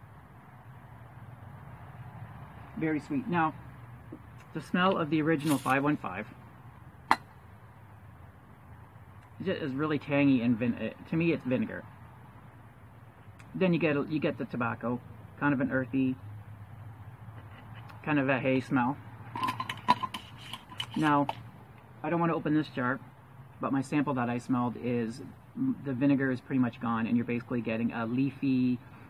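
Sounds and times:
low background hiss: 0.0s - 29.0s
glass jar lid clinking: 19.3s - 21.0s.

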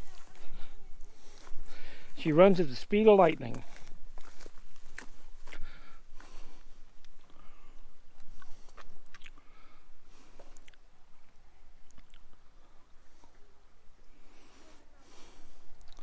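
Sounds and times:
footsteps crunching on dry leaves: 1.2s - 6.8s.

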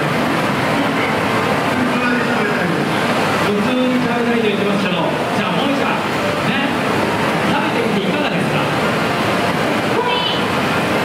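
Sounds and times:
crowd din in large hall: 0.0s - 11.0s.

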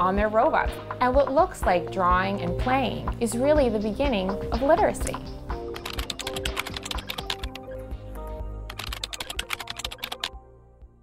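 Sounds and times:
soft background music: 0.0s - 11.0s
keyboard key clicks: 5.8s - 7.6s, 8.7s - 10.3s.

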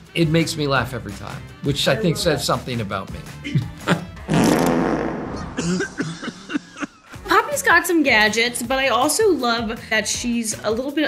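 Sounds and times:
spluttering fart sound effect: 4.1s - 6.4s.

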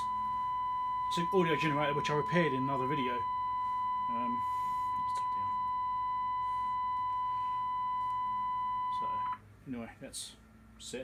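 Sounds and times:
high beep-like test tone: 0.0s - 9.4s.

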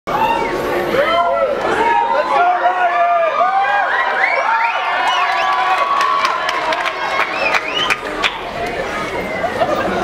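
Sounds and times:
audience cheering and screaming: 0.1s - 10.0s
audience clapping: 4.8s - 8.8s.

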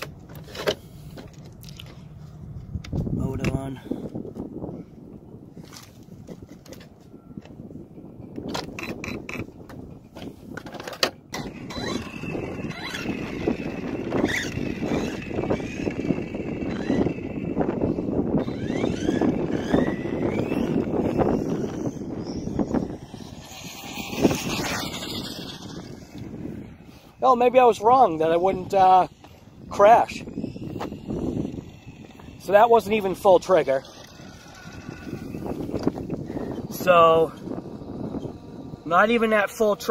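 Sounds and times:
electric rc car motor whining: 8.5s - 9.6s, 10.2s - 39.9s.

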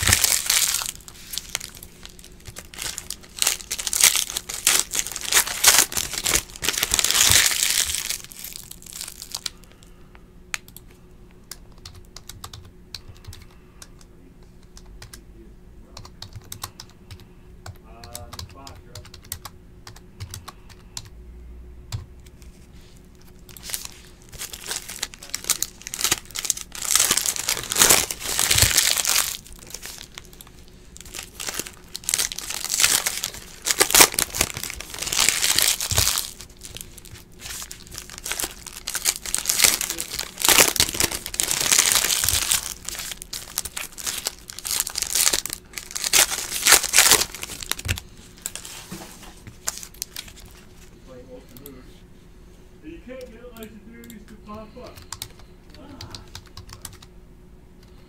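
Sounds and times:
plastic wrappers crinkling: 0.0s - 9.9s, 23.1s - 50.9s.

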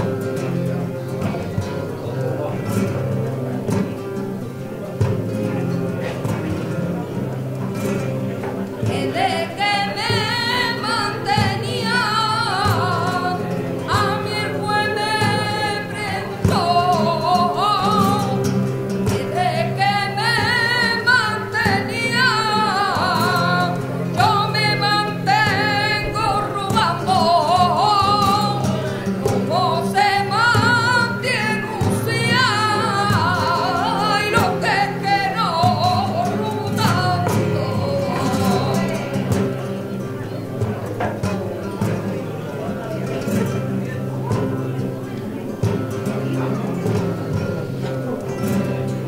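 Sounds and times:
flamenco guitars: 0.0s - 49.0s
woman singing ornamented phrases: 8.8s - 39.4s.

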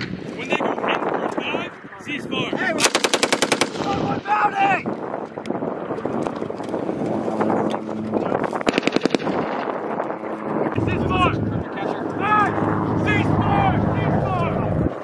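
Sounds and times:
machine gun bursts: 2.8s - 3.9s, 8.7s - 9.7s.

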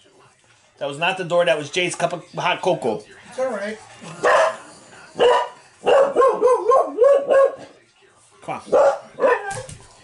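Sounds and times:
dog barking: 4.2s - 4.6s, 5.2s - 7.7s, 8.7s - 9.7s.

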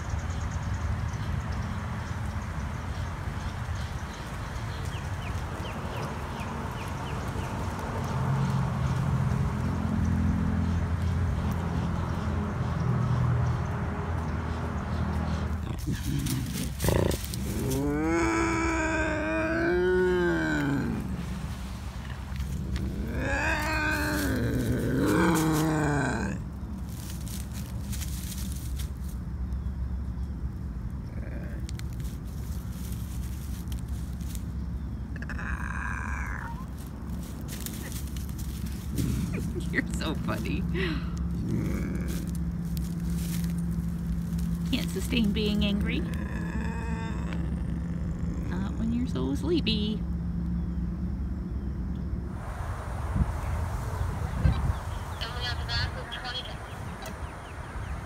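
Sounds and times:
steady low hum: 13.6s - 58.0s
bobcat yowling: 22.8s - 26.4s, 35.1s - 36.9s, 45.9s - 49.1s.

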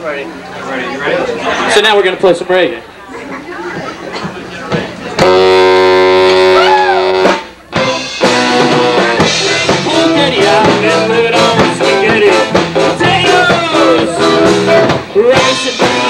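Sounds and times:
live ska band playing: 3.8s - 16.0s.

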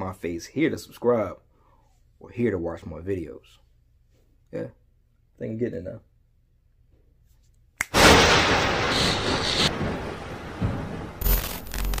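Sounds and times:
loud hit: 8.0s - 12.0s.

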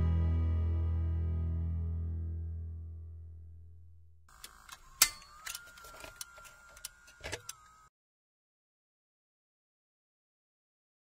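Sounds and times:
faint steady whine: 4.3s - 7.9s.

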